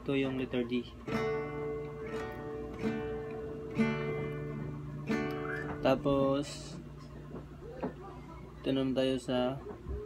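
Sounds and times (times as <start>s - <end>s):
guitar chord strums: 0.0s - 7.6s.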